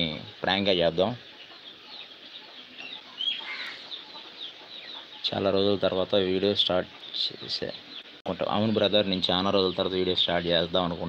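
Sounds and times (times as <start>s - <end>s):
high bird chirps: 1.1s - 10.1s.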